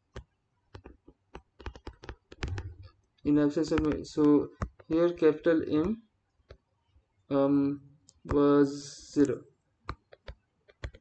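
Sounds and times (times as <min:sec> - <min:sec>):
clicks and taps on screen: 0:00.0 - 0:06.7, 0:08.0 - 0:08.5, 0:09.2 - 0:11.0.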